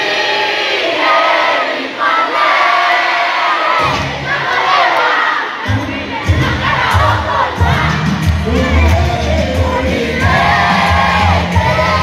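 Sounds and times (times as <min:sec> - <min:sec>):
crowd cheering and shouting: 0:00.0 - 0:12.0
music: 0:03.7 - 0:12.0
heavy bass beat: 0:05.7 - 0:12.0.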